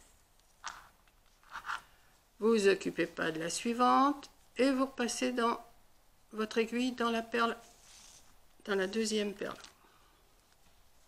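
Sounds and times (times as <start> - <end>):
wooden beads scraping: 0.0 - 2.0, 7.6 - 8.4.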